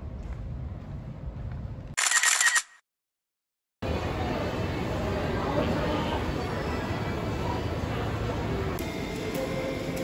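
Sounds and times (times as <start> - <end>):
camera shutter click: 2.0 - 2.8.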